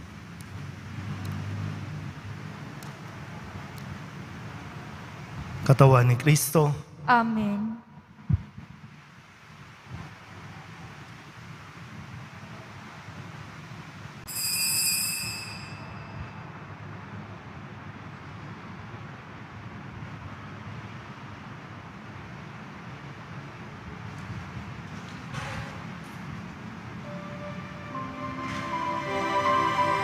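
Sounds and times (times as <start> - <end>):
high-pitched ringing tone: 14.3 - 16.6, 27.1 - 30.0
church background noise: 25.6 - 30.0.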